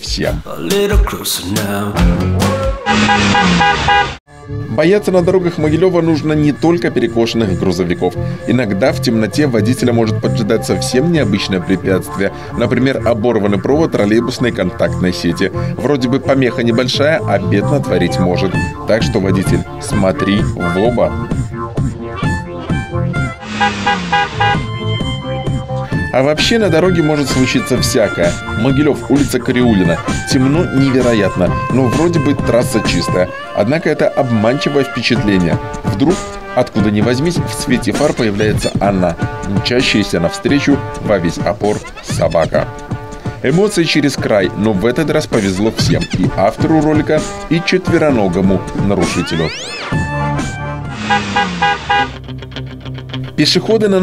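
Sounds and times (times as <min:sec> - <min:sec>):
background music: 0:00.0 - 0:54.0
car horn beeping: 0:02.8 - 0:04.2, 0:23.4 - 0:25.2, 0:50.9 - 0:52.2.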